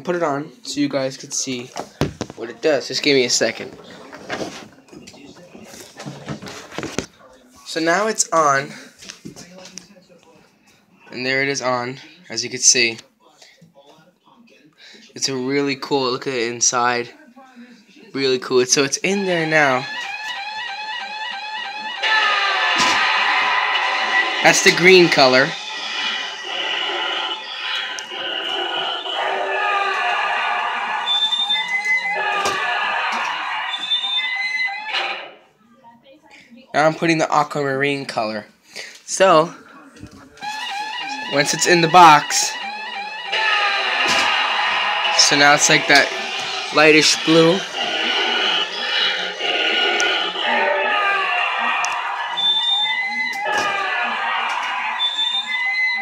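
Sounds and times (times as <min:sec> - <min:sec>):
sci-fi sound effects: 0:21.6 - 0:35.4, 0:40.5 - 0:56.0
ghoulish voice: 0:22.0 - 0:34.0, 0:43.3 - 0:52.7
electronic soundtrack: 0:40.4 - 0:53.6.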